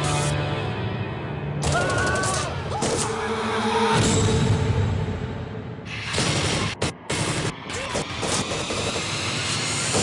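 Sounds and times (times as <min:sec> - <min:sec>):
film score music: 0:00.0 - 0:10.0.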